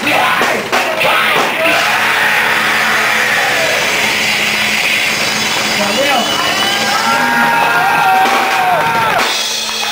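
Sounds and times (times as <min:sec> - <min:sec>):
distorted heavy band playing: 0:00.0 - 0:09.9
grinding electric guitar noise: 0:01.8 - 0:09.9.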